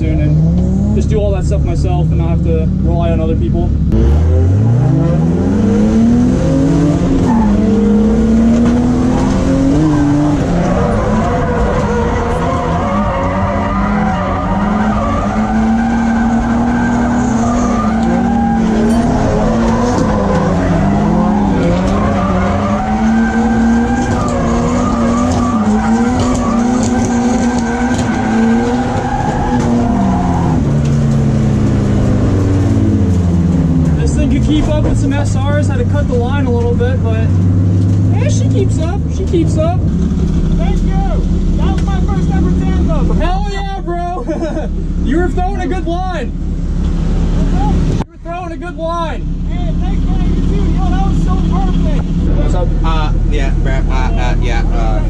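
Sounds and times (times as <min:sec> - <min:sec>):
car engine revving: 0:00.0 - 0:55.0
tires skidding and squealing: 0:04.8 - 0:48.0.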